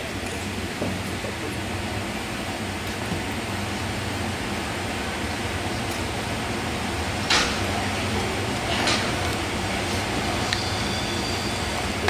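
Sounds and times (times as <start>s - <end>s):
air handling hum and hiss: 0.0s - 12.0s.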